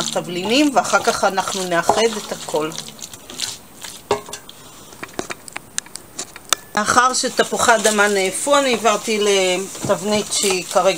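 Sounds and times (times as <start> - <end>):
spatula stirring chicken in pan: 0.0 - 5.2, 7.0 - 10.9.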